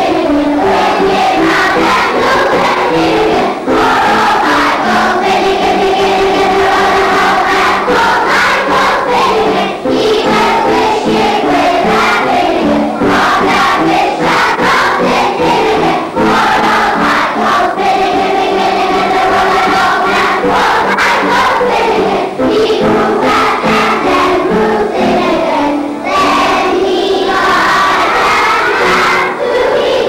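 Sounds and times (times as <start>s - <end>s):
children singing in unison: 0.0s - 30.0s.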